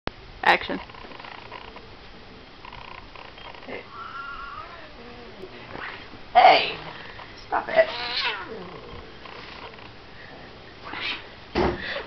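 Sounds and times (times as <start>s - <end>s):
cat yowling: 3.9s - 6.9s, 7.7s - 8.6s, 10.8s - 11.3s.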